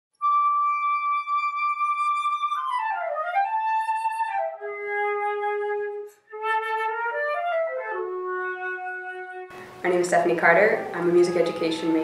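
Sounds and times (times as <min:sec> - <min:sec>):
flute long high note: 0:00.2 - 0:09.8, 0:10.8 - 0:12.0.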